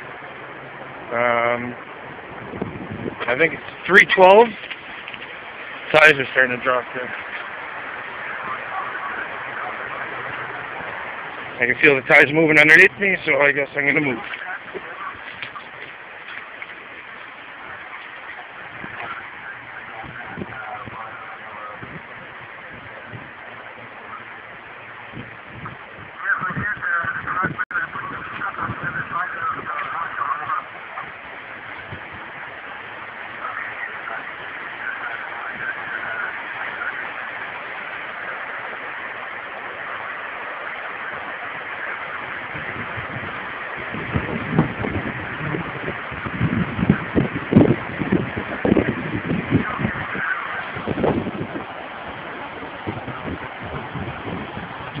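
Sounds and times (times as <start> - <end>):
rough low rumbling and bumping: 0.0 - 37.0, 42.1 - 55.0
steady rushing hiss: 0.0 - 55.0
muffled voices: 5.9 - 24.8, 25.6 - 43.8, 46.6 - 54.0.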